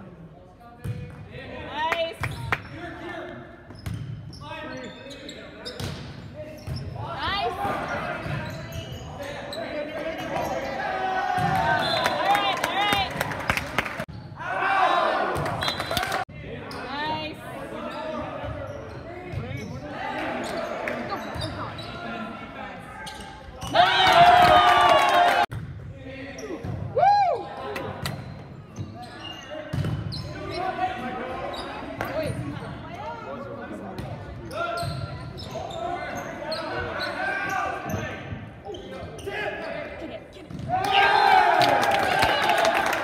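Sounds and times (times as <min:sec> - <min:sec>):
players shouting: 0:23.6 - 0:25.5.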